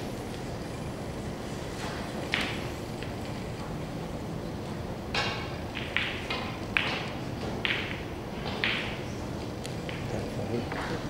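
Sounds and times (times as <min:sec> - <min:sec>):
cue striking ball: 0:01.9 - 0:02.8, 0:05.1 - 0:09.2
snooker balls clicking: 0:01.9 - 0:03.7, 0:05.1 - 0:11.0.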